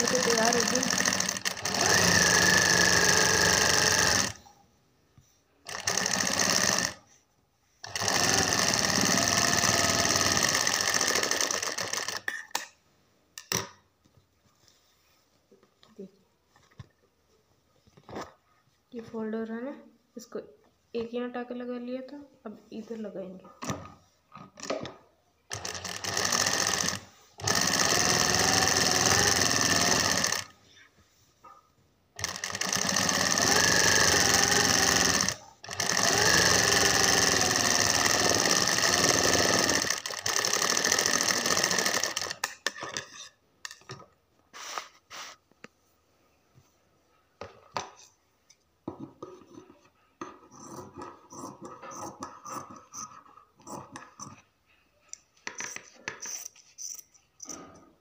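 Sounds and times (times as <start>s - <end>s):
sewing machine stitching: 0.0s - 4.4s, 5.7s - 7.0s, 7.8s - 12.4s, 25.5s - 30.6s, 32.2s - 42.8s.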